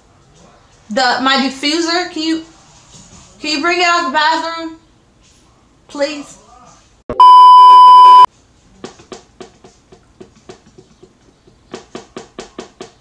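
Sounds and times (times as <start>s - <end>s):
loud test-tone beep: 7.1s - 8.3s.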